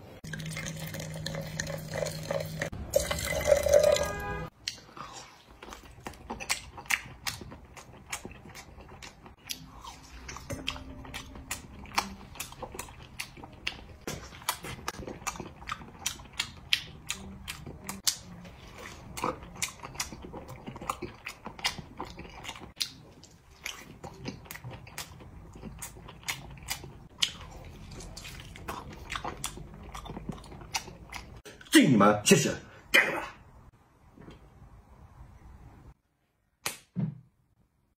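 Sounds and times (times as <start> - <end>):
person chewing meat: 4.6 - 31.5.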